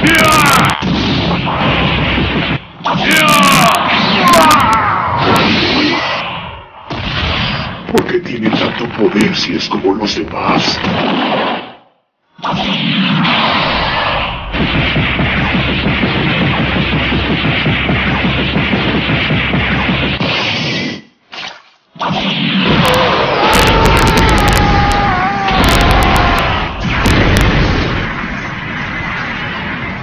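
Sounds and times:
loud rumbling blast: 22.7s - 30.0s.

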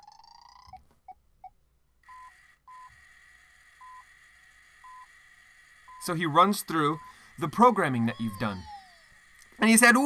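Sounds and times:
wheel motors whirring: 2.1s - 10.0s
robot blips: 5.9s - 9.7s.

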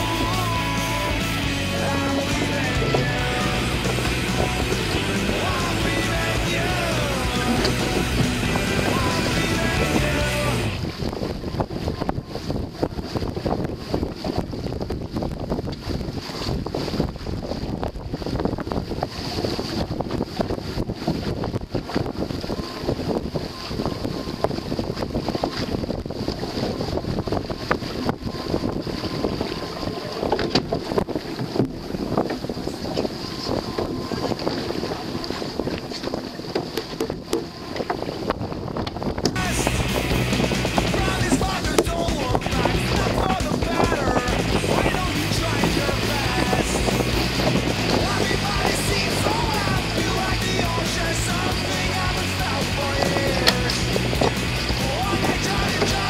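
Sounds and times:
rush of wind and water: 0.0s - 56.0s
wind buffeting microphone: 0.0s - 56.0s.

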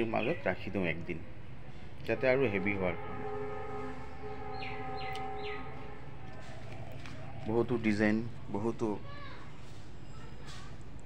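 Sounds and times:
long steady chord horn: 2.1s - 6.4s.

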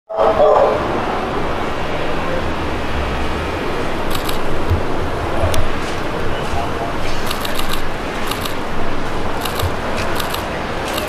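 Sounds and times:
street noise with low rumble: 0.1s - 11.0s
camera shutters clicking: 4.1s - 4.5s, 7.3s - 8.6s, 9.4s - 11.0s.

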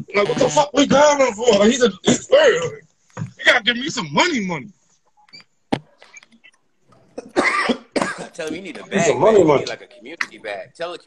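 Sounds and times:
person coughing: 7.2s - 8.4s.

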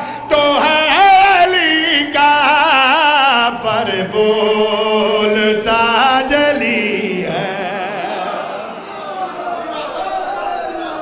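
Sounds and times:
man singing ornamented melody: 0.0s - 8.7s.

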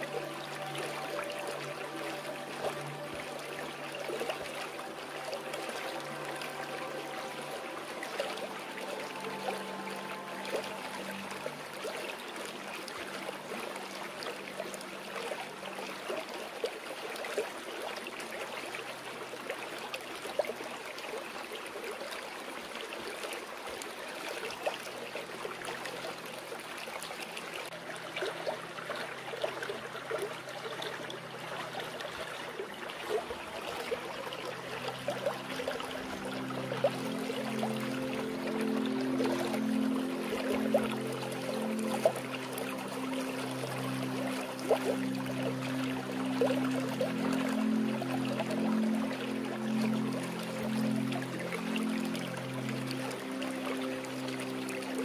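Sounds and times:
stream water trickling: 0.0s - 55.0s
soft piano tones: 33.1s - 55.0s.

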